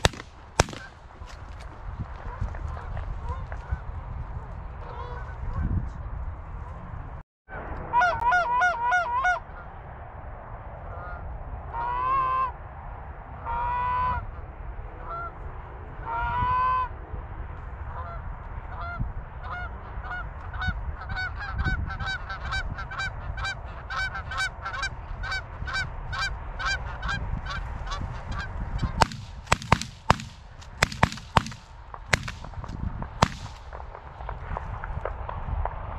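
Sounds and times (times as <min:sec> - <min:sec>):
loud sharp bangs: 0:00.0 - 0:01.3, 0:29.0 - 0:33.9
geese honking and clucking: 0:04.8 - 0:05.7, 0:07.9 - 0:09.7, 0:15.0 - 0:15.4, 0:18.0 - 0:32.3.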